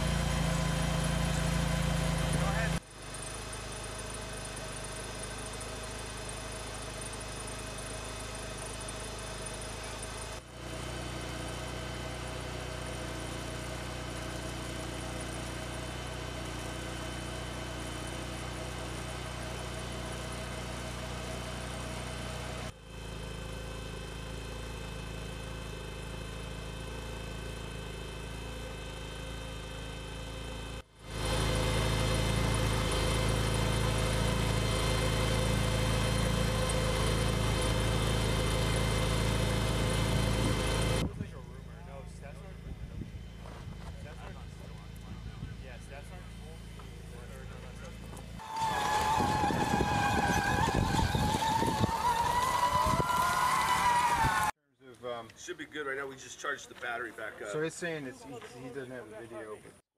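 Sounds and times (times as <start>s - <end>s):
vehicle engine idling: 0.0s - 54.5s.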